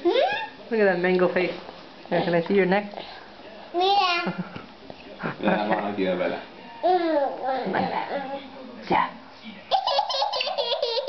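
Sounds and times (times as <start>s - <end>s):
young child giggling: 9.7s - 11.0s.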